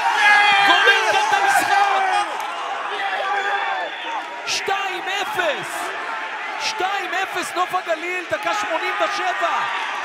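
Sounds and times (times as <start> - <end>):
stadium crowd noise: 0.0 - 10.0
man commentating: 0.1 - 3.5, 4.4 - 6.0, 6.6 - 10.0.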